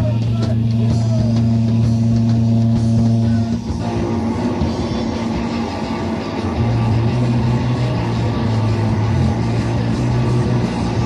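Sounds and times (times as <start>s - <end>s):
low bass note: 0.0s - 11.0s
rock band sustained drone: 0.0s - 11.0s.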